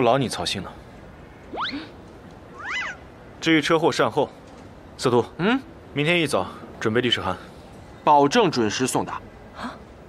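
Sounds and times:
comic upward swoop: 0:01.5 - 0:01.9
comic meow-like call: 0:02.6 - 0:03.0.

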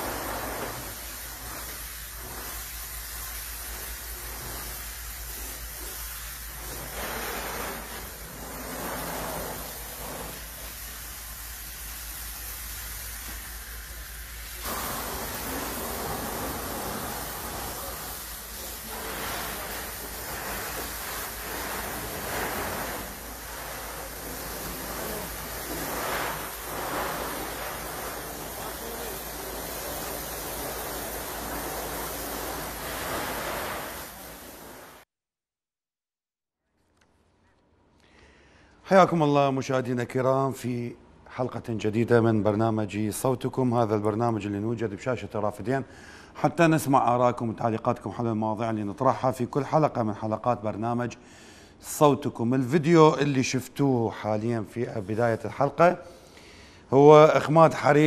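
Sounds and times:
hose spraying water: 0:00.0 - 0:35.1.

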